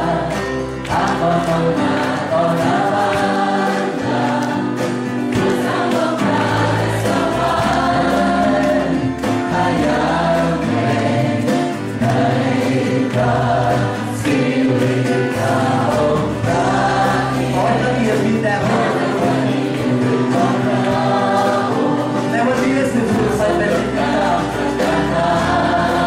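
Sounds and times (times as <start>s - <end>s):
worship song singing with band: 0.0s - 26.0s.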